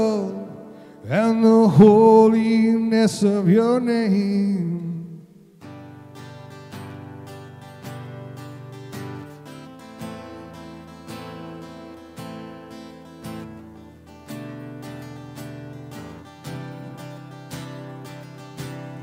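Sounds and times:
acoustic guitar strummed slowly: 0.0 - 19.0.

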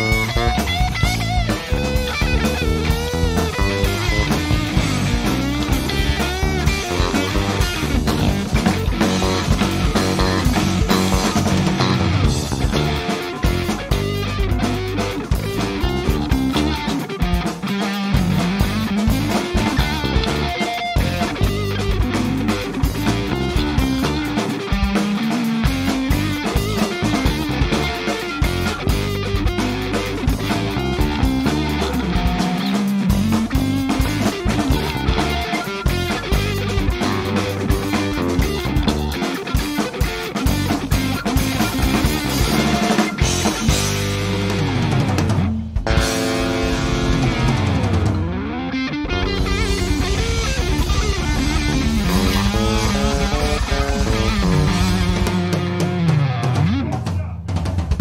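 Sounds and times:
drum kit: 0.0 - 58.0
electric bass: 0.0 - 58.0
electric guitar: 0.0 - 58.0.

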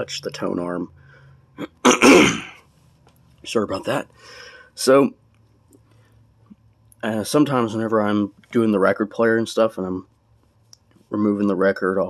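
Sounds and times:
person coughing: 1.6 - 2.6.

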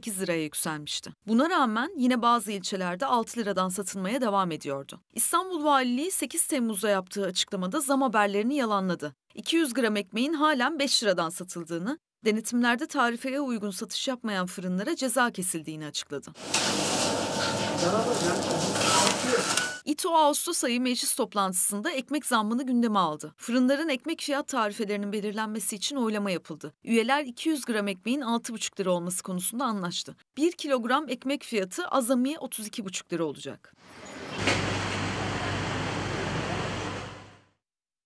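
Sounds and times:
steady hiss-like din: 16.4 - 19.7
narrator speaking: 17.6 - 20.1.

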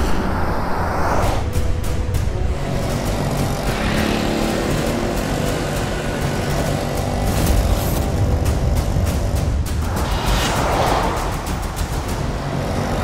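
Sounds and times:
car driving on road: 0.0 - 13.0
tense background music: 0.0 - 13.0.

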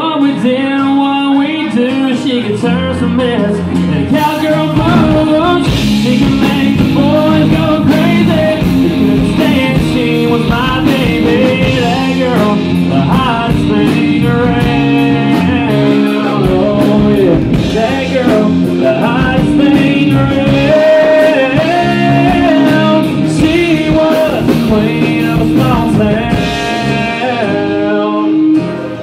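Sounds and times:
country-rock band playing: 0.0 - 29.0.

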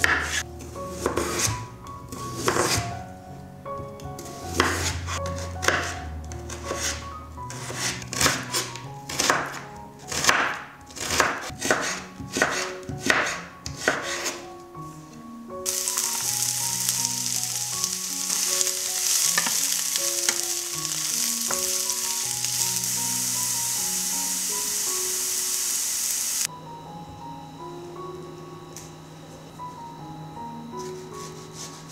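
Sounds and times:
knife slicing carrot on wooden board: 7.6 - 14.4
vegetables sizzling in oil: 15.7 - 26.5.

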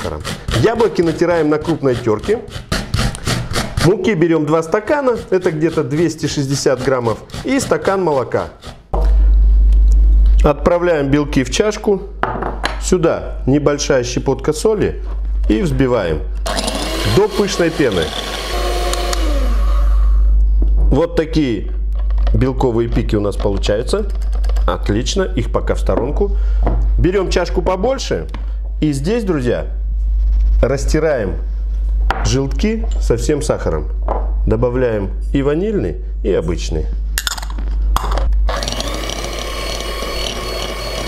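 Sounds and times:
electric hand mixer whirring: 16.5 - 20.3, 38.5 - 41.0.

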